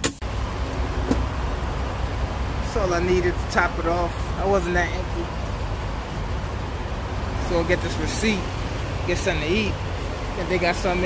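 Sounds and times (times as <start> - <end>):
idling truck diesel engine: 0.0 - 11.0.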